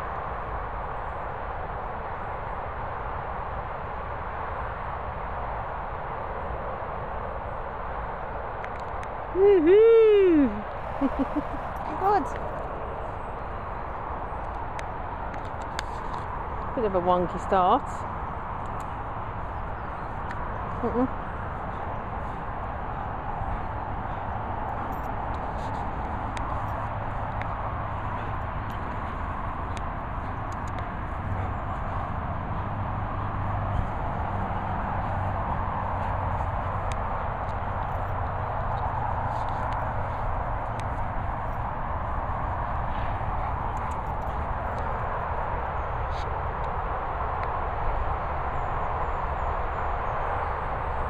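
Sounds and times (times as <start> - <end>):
rushing outdoor background noise: 0.0 - 51.0.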